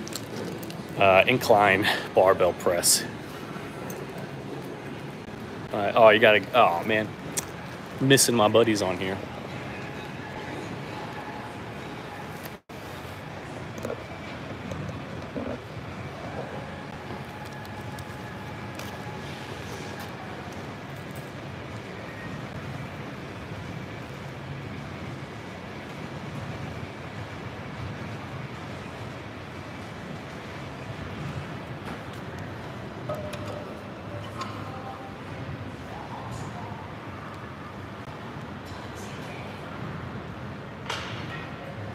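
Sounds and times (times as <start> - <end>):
gym hall background noise: 0.0 - 41.9.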